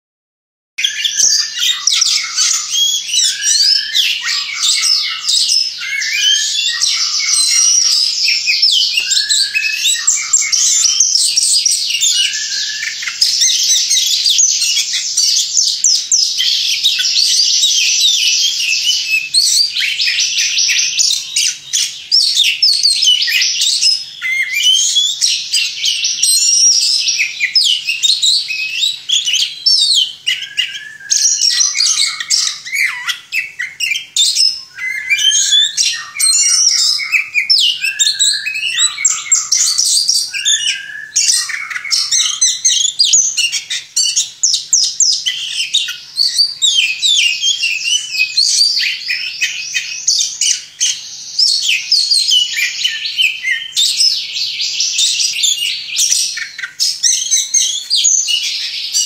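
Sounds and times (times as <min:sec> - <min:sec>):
bird singing chirps and trills: 0:00.8 - 0:59.0.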